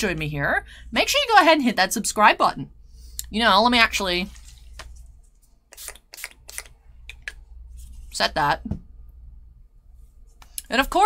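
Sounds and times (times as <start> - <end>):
spray bottle spritzes: 5.7 - 6.7.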